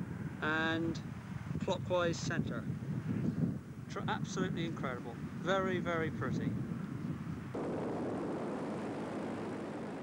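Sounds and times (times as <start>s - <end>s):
aircraft engine drone: 6.9s - 10.0s.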